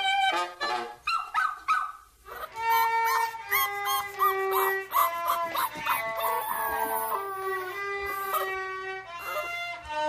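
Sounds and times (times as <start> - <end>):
puppy howling: 2.3 - 8.6, 9.2 - 9.6
held musical notes: 2.3 - 10.0.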